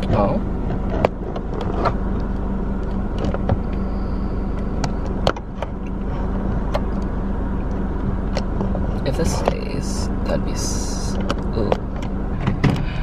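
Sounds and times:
car interior hum: 0.0 - 13.0.

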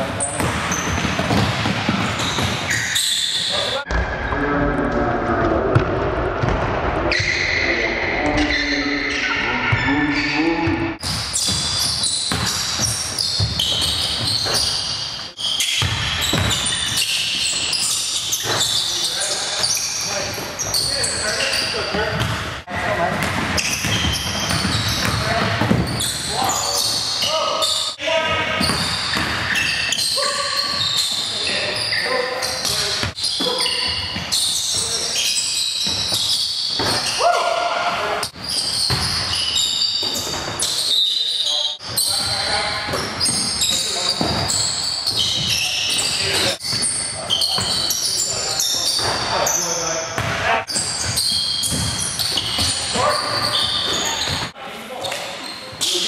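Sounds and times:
players' voices echoing: 0.0 - 56.0
basketball bouncing on hardwood: 0.4 - 2.7, 23.1 - 26.0.

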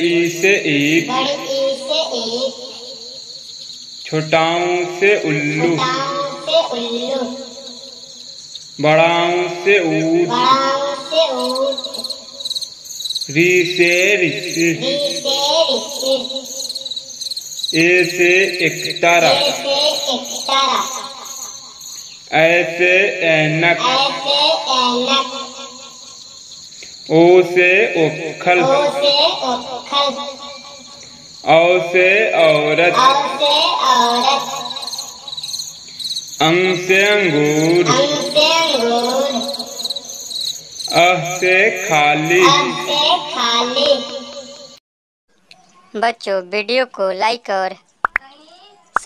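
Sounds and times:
person speaking: 0.0 - 2.6, 4.1 - 7.4, 8.8 - 11.9, 13.3 - 16.3, 17.8 - 20.9, 22.3 - 25.3, 27.1 - 30.2, 31.5 - 34.6, 36.4 - 39.7, 40.9 - 44.3, 45.5 - 48.3
high-pitched chirring: 9.8 - 22.9, 30.4 - 44.8
person singing a long vowel: 36.7 - 39.5.

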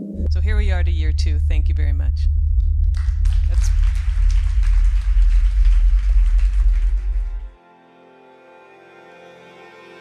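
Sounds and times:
steady low hum: 0.0 - 7.6
audience applauding: 3.0 - 7.6.

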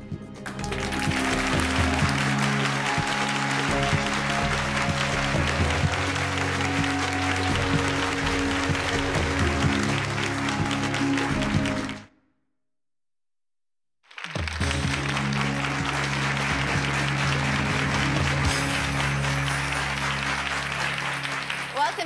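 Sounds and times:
music playing: 0.0 - 12.1, 14.4 - 22.0
audience applause: 0.5 - 12.1, 14.1 - 22.0.

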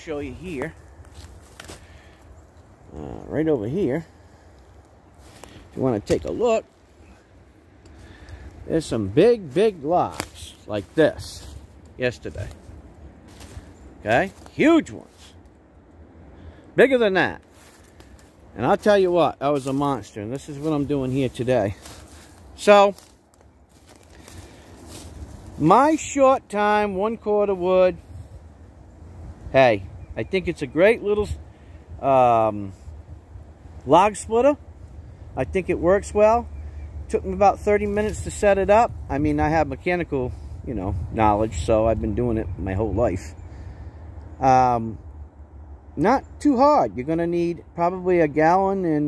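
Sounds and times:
footsteps on dry leaves: 0.0 - 3.1, 3.7 - 15.5, 17.4 - 26.5
low steady rumble: 0.0 - 49.0.

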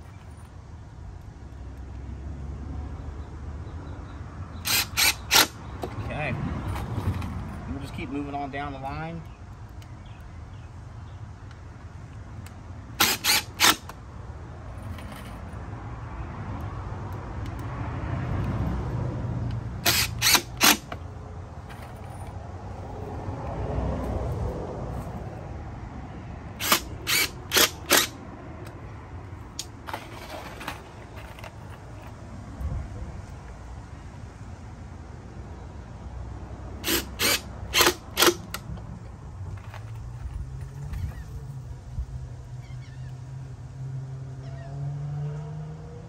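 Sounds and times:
cordless drill driving screws: 4.6 - 6.0, 13.0 - 14.0, 19.8 - 21.0, 26.6 - 28.2, 36.8 - 38.6.

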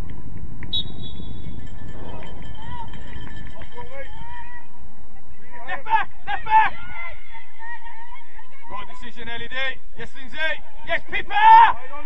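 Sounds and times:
referee's whistle: 0.7 - 1.6
players shouting: 5.6 - 9.2, 10.3 - 12.0.

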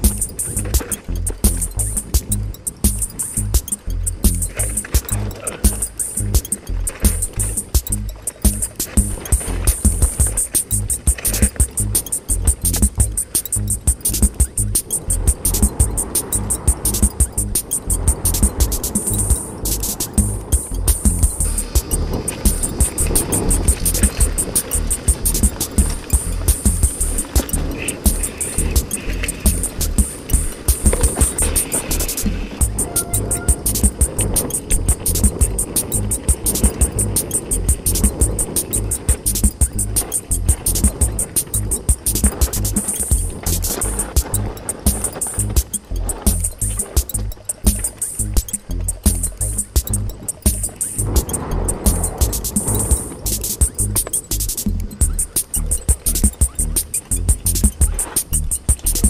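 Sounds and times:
low rumble from riding: 0.0 - 59.0
mountain bike clattering on trail: 0.0 - 59.0
music: 0.0 - 59.0.

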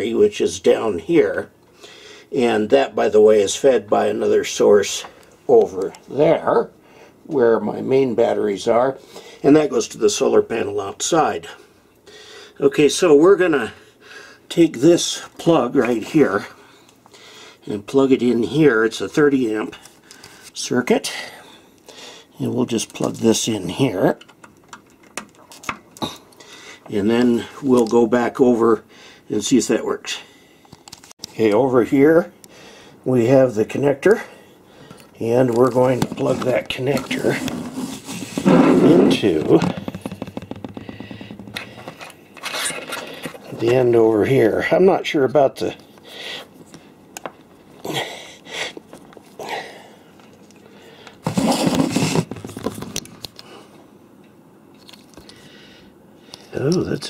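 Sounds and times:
cord scraping on wooden desk: 35.9 - 43.8, 51.2 - 52.8.

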